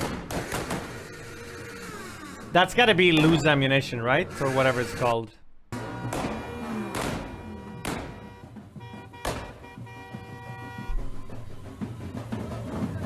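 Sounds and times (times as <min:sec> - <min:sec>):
sharp celebratory bangs: 0:05.8 - 0:09.8.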